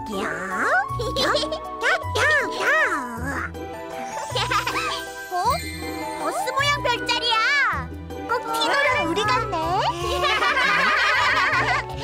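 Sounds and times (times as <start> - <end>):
tinkling bells: 3.8 - 7.4.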